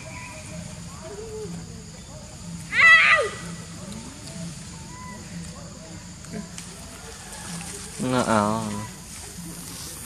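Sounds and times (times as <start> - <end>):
fainter lower monkey call: 2.6 - 5.3
macaque high-pitched call: 2.7 - 3.6.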